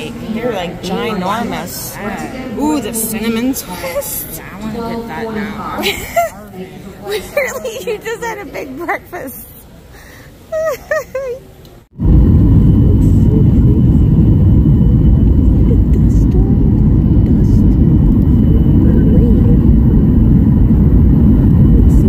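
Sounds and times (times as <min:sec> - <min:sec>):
airliner cabin engine rumble: 0:11.9 - 0:22.0.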